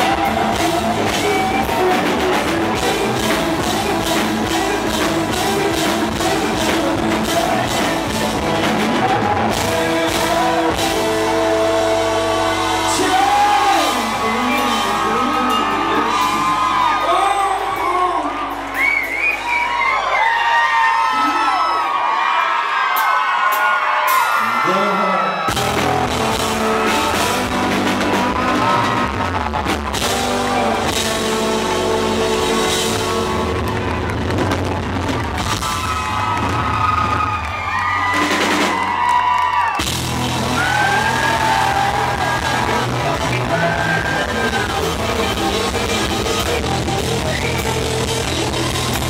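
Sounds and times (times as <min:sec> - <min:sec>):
electric guitar lead: 0:00.0 - 0:18.8, 0:25.3 - 0:49.0
man singing: 0:00.0 - 0:18.8, 0:24.3 - 0:34.0, 0:40.2 - 0:49.0
live band playing: 0:00.0 - 0:20.2, 0:23.0 - 0:49.0
bass: 0:00.0 - 0:21.8, 0:24.2 - 0:49.0
drums: 0:00.0 - 0:21.9, 0:22.6 - 0:49.0
crowd whooping and cheering: 0:00.0 - 0:49.0.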